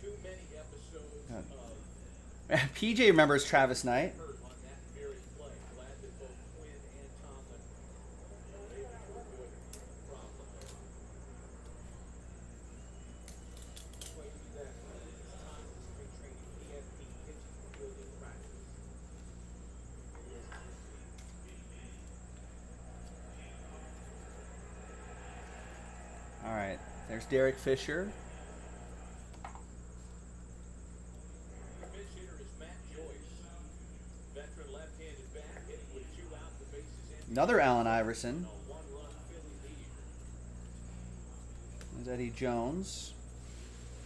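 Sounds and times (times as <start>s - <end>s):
faint high whine: 0.0s - 44.0s
low electrical hum: 0.0s - 44.0s
faint indistinct voices: 4.2s - 37.5s
trading cards flipping clicks: 13.2s - 14.3s.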